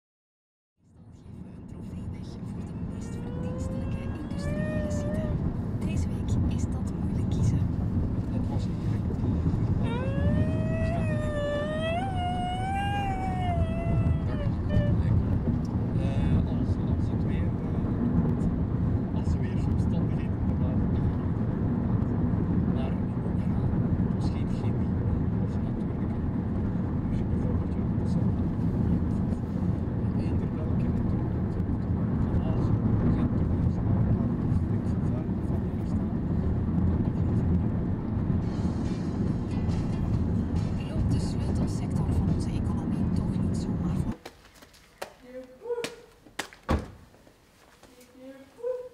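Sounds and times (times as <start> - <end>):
car road and engine rumble: 0.8 - 44.2.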